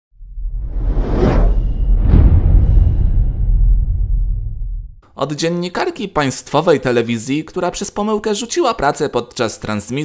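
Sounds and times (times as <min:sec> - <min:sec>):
deep rumble: 0:00.1 - 0:05.0
whoosh: 0:00.2 - 0:05.0.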